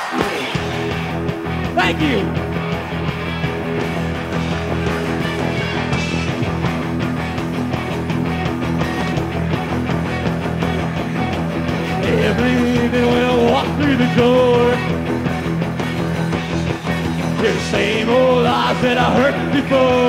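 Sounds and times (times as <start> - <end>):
live rock band playing: 0.0 - 20.0.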